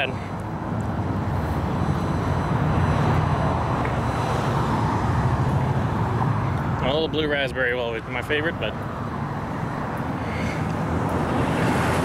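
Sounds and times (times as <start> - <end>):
road traffic rumble and tyre hiss: 0.0 - 12.0.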